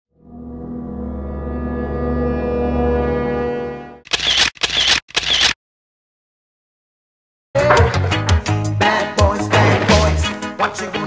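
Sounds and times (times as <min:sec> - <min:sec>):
camera shutter sound effects: 0:04.1 - 0:05.6.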